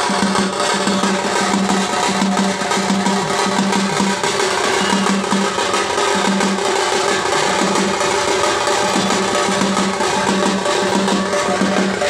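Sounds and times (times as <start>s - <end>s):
double-headed drum fast rhythm: 0.0s - 12.0s.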